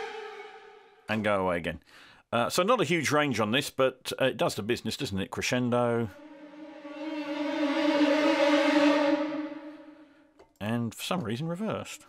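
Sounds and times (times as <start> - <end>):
eerie orchestral string trill: 0.0 - 1.2, 5.8 - 10.3.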